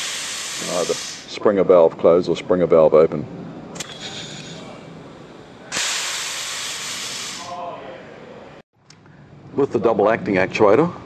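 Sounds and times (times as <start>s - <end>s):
compressed air hissing: 0.0s - 1.3s, 5.7s - 7.5s
air valve click: 3.8s - 4.1s, 5.7s - 7.4s.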